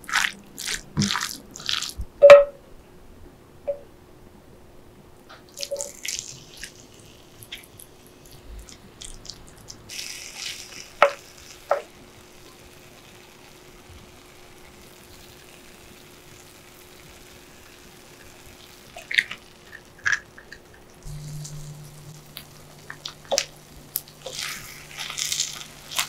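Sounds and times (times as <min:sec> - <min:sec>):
food sizzling on a hot plate: 0:05.5 - 0:26.0.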